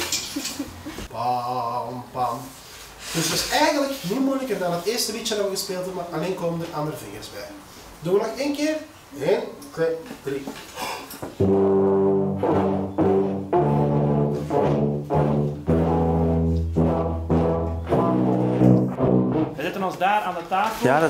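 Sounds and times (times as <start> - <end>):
low brass horns playing: 11.4 - 19.8.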